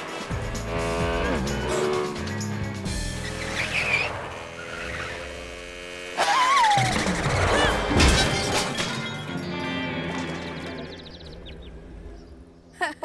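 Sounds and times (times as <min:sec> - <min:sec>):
motorbike engine sound effect: 0:00.0 - 0:08.3.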